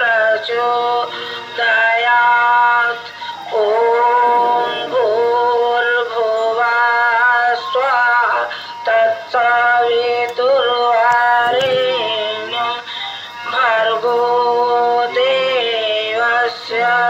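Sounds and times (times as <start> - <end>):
person singing devotional song: 0.0 - 17.0.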